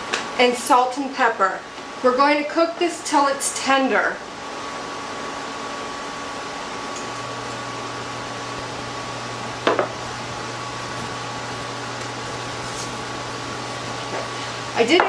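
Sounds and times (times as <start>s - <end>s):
electric burner whirring and humming: 0.0s - 15.0s.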